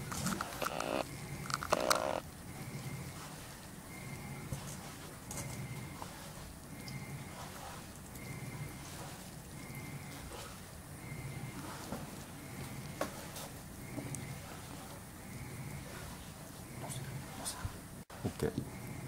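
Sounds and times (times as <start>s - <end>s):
drips: 1.1s - 17.5s.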